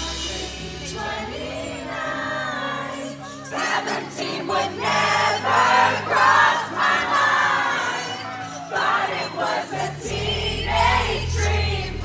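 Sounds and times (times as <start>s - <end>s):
bass notes: 0.0s - 2.6s, 9.8s - 12.0s
pop-rock band backing: 0.0s - 12.0s
woman singing: 0.0s - 12.0s.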